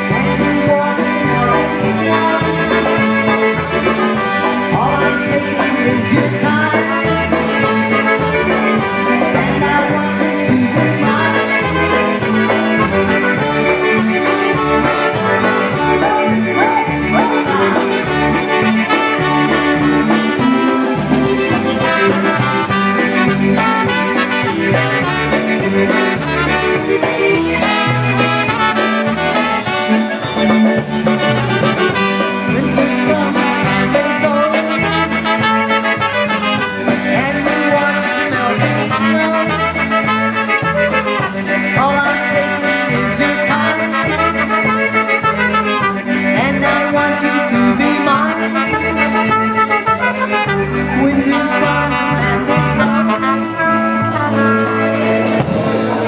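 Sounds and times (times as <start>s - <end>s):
concertina and accordion: 0.0s - 56.0s
drums: 0.0s - 56.0s
repeating bass line: 0.0s - 56.0s
trumpets: 0.0s - 56.0s.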